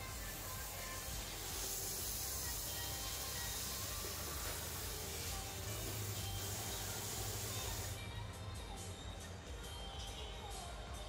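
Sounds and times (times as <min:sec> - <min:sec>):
shower head spraying water: 0:00.0 - 0:08.0
soft background music: 0:00.0 - 0:11.0.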